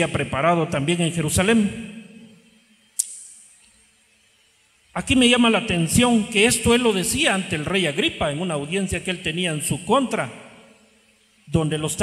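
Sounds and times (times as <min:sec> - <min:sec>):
sharp click: 0:03.0 - 0:03.8.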